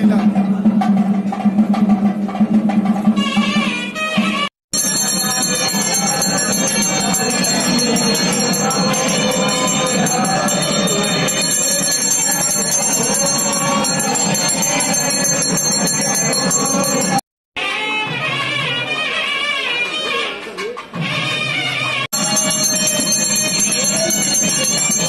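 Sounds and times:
temple bells ringing: 4.8s - 17.2s, 22.2s - 25.0s.

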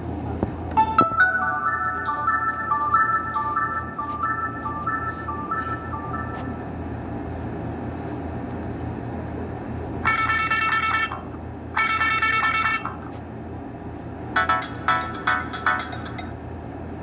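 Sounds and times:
ringtone from small loudspeaker: 0.8s - 6.8s, 10.0s - 13.1s, 14.4s - 16.3s
low hum: 0.8s - 8.2s.

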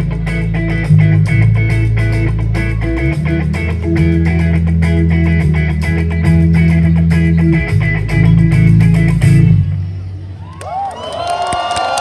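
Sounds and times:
band music: 0.0s - 10.6s
crowd cheering and shouting: 2.3s - 3.5s, 10.0s - 12.0s.

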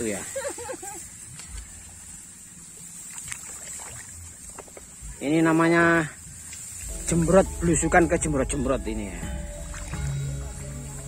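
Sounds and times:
rice stalks rustling against clothing: 0.0s - 11.0s
steady high hiss: 0.0s - 11.0s.

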